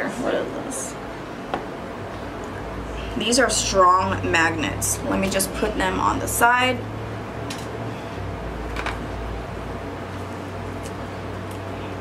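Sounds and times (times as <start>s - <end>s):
electric fan running: 0.0s - 12.0s.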